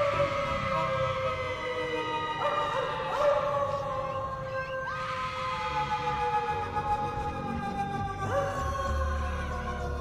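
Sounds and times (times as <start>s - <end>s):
dog howling: 0.0s - 10.0s
eerie music: 0.0s - 10.0s.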